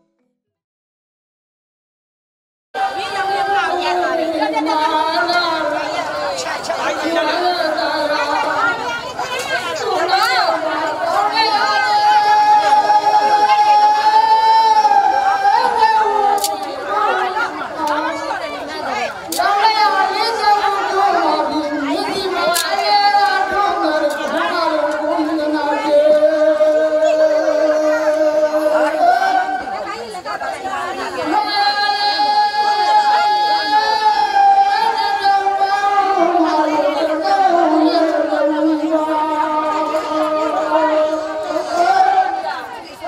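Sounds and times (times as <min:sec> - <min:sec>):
man chanting over loudspeaker: 0:02.8 - 0:30.0, 0:31.0 - 0:43.0
crowd chatter: 0:02.8 - 0:43.0
people talking at once: 0:02.8 - 0:43.0.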